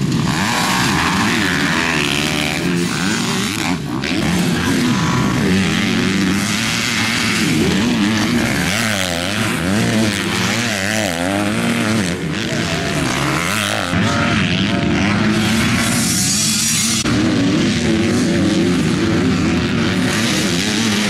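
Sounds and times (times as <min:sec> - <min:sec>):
dirt bike engines revving: 0:00.0 - 0:21.0.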